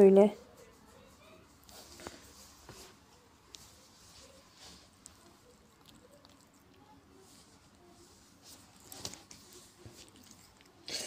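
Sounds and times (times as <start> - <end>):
rustling of cat fur: 0.1 - 10.9.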